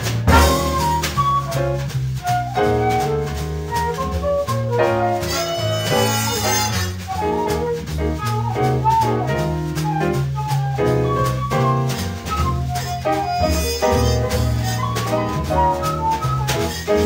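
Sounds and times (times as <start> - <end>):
drum kit: 0.0 - 17.0
walking bass line: 0.0 - 17.0
saxophone and brass lines: 0.3 - 0.9, 5.2 - 7.1, 12.8 - 15.4.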